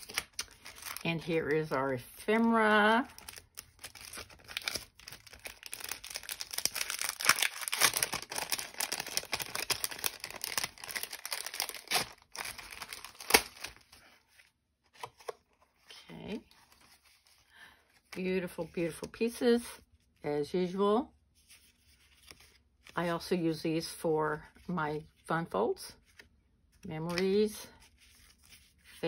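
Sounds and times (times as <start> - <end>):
cellophane crinkling and tearing: 0.0 - 1.4, 3.0 - 14.4.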